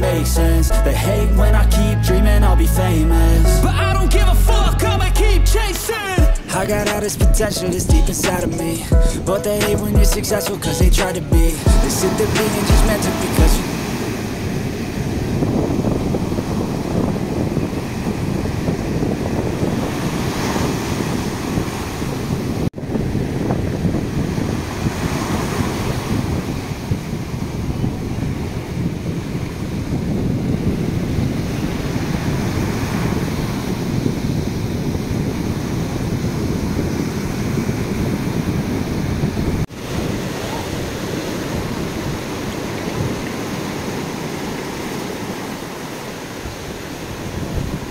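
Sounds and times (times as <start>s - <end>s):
surf breaking on beach: 5.9s - 47.9s
wind buffeting microphone: 6.2s - 47.9s.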